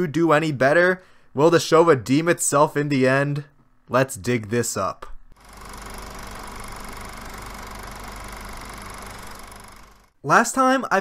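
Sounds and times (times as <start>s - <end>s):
motor running steadily: 5.4s - 10.1s.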